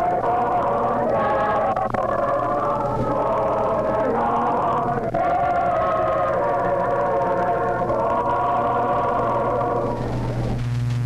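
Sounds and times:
choir singing a cappella: 0.0 - 10.1.

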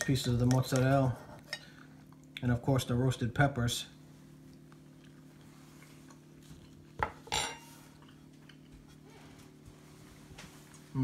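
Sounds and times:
cutlery clinking on ceramic plate: 7.0 - 7.7.

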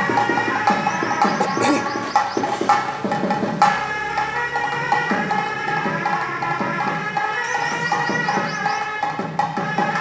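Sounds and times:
drum beat: 0.0 - 4.0, 7.8 - 10.0.

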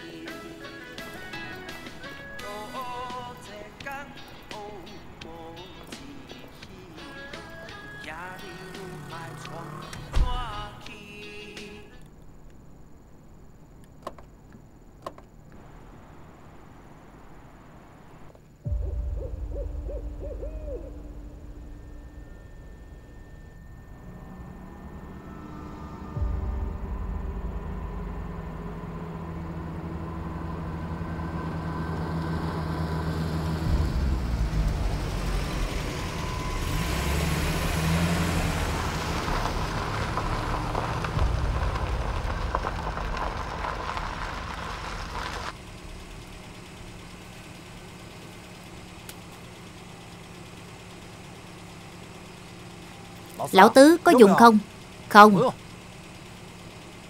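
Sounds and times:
truck engine rumbling: 0.0 - 10.8, 11.8 - 57.0.

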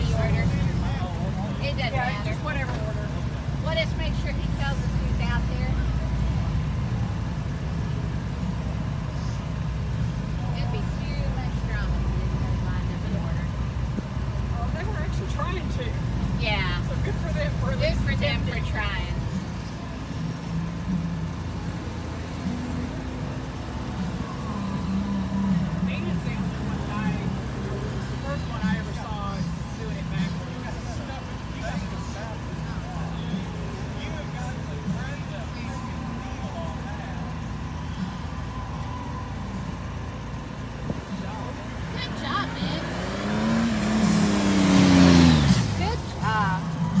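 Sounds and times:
motorcycle engine running: 0.0 - 47.0
motorcycle passing by: 41.3 - 47.0.

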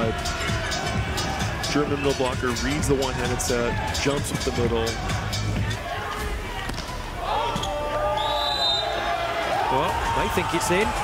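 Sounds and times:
arena music: 0.0 - 11.0
crowd shouting: 0.0 - 11.0
short high whistle blast: 8.1 - 9.0.

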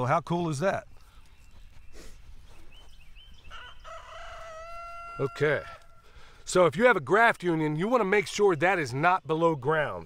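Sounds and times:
rooster crowing: 3.4 - 6.3.

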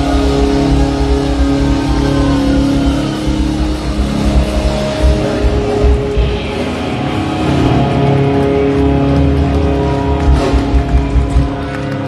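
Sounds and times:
drums: 0.0 - 12.0
electric guitar sustained notes: 0.0 - 12.0.

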